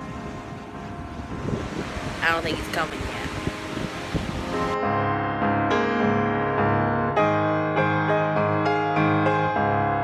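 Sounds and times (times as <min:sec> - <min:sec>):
ocean surf on beach: 0:00.0 - 0:04.8
wind on microphone: 0:00.0 - 0:05.0.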